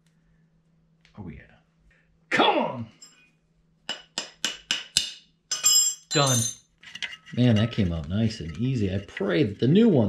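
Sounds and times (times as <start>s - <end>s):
wrench clinking on metal: 5.5s - 6.7s.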